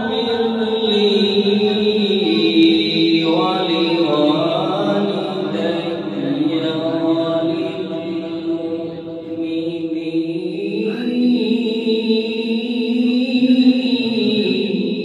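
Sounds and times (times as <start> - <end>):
man reciting melodically: 0.0 - 15.0.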